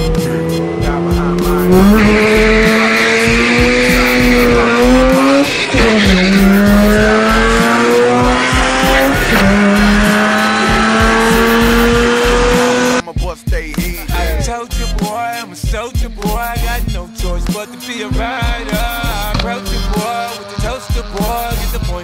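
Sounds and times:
rotary engine revving: 0:00.0 - 0:13.0, 0:16.4 - 0:21.9.

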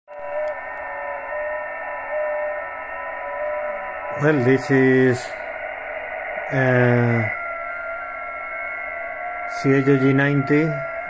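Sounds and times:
whistling carrier tones: 0:00.1 - 0:11.0
radio band hiss: 0:00.2 - 0:11.0.

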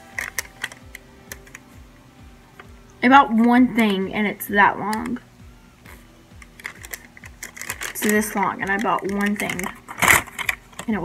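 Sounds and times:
paper receipt rustling: 0:06.5 - 0:11.0.

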